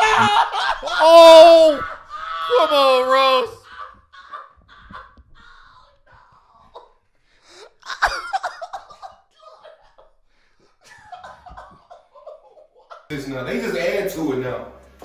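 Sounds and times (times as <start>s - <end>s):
men laughing hard: 0.0s - 13.1s.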